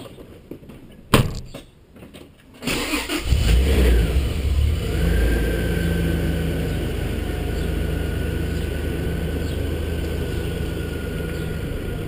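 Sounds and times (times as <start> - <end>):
car engine starting and idling: 2.6 - 12.0.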